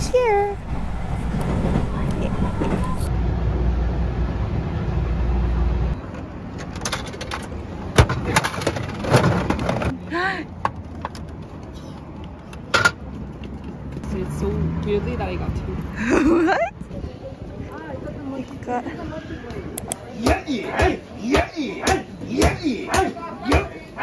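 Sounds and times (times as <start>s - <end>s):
train carriage rumble: 0.0s - 3.4s.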